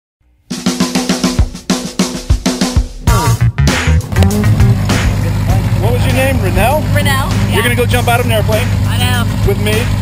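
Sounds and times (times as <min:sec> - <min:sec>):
intro music: 0:00.3 - 0:10.0
low rumble: 0:03.3 - 0:10.0
people talking: 0:05.0 - 0:10.0.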